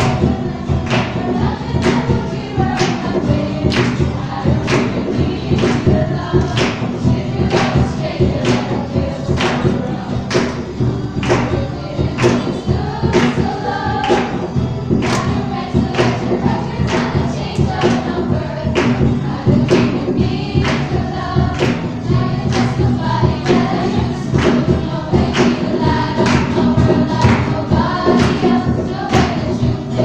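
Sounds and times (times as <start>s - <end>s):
girls singing together: 0.0s - 30.0s
music with strong beat: 0.0s - 30.0s.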